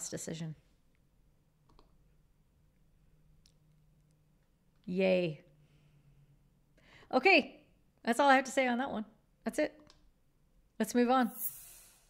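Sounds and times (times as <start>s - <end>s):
woman speaking: 10.8s - 11.5s.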